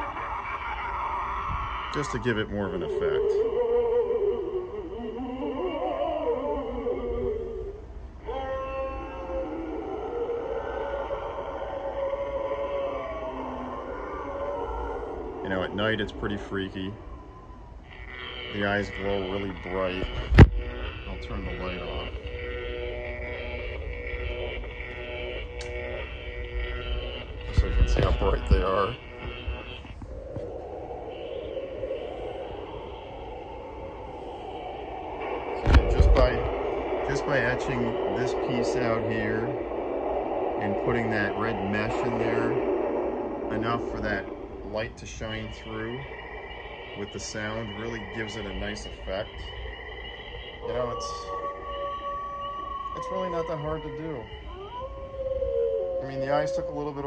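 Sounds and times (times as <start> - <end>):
drawn-out droning tone: 0.0 - 57.0
eerie moaning tone: 0.0 - 57.0.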